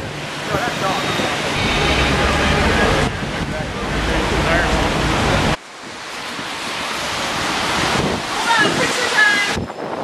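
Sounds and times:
rain: 0.0s - 10.0s
traffic on wet roads: 0.0s - 10.0s.

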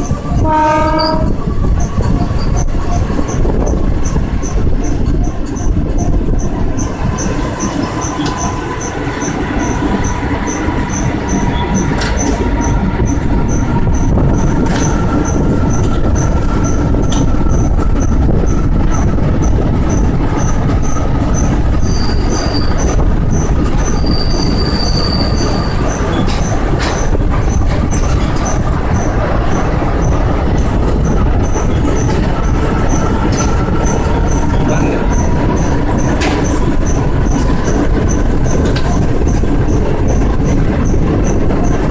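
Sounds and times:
higher wheel squeals: 0.0s - 15.9s, 19.4s - 30.2s
train wheels rumbling on rails: 0.0s - 41.9s
thin wheel squeal: 21.8s - 22.9s, 23.8s - 26.5s.

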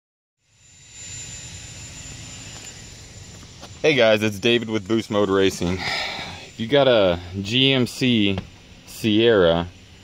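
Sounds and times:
high-pitched whine: 0.4s - 10.0s.

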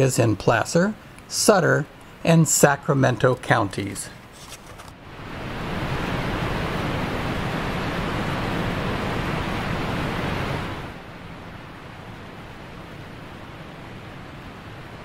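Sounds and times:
rushing water noise: 5.1s - 15.0s.

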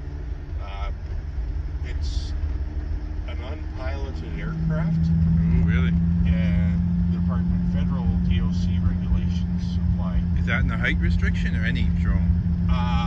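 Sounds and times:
car engine drone: 0.0s - 13.0s
road noise: 0.0s - 13.0s.

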